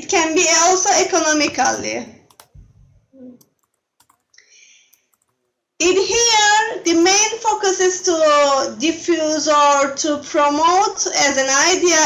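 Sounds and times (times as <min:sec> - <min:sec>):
person speaking: 0:00.0 - 0:04.2.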